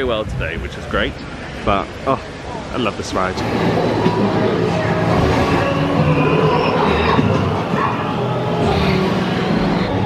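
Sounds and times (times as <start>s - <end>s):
dense background wash: 0.0s - 10.0s.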